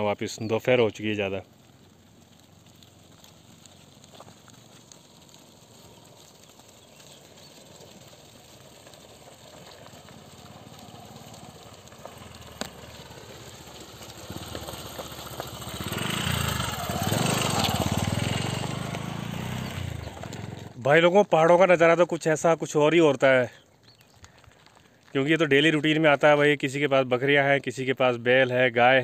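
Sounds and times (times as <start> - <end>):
motorcycle engine running: 9.5 - 20.8.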